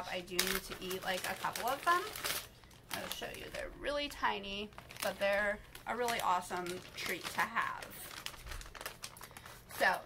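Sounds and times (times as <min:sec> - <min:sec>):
plastic snack packet crinkling: 0:00.0 - 0:10.0.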